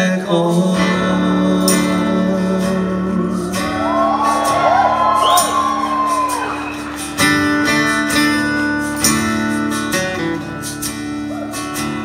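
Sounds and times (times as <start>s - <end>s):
person singing: 0.0s - 6.6s
live band playing: 0.3s - 12.0s
audience whooping and whistling: 3.7s - 7.4s.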